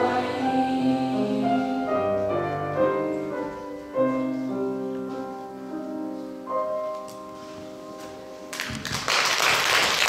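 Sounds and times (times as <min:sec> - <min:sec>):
piano chord: 0:00.0 - 0:08.5
audience applause: 0:08.5 - 0:10.0.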